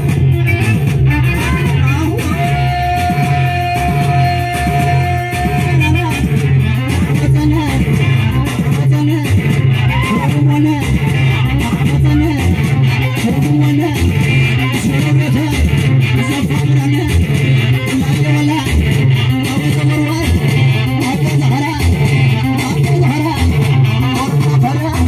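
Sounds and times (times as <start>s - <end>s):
bass guitar: 0.0s - 25.0s
electric guitar riff: 0.0s - 25.0s
steady beat: 0.0s - 25.0s.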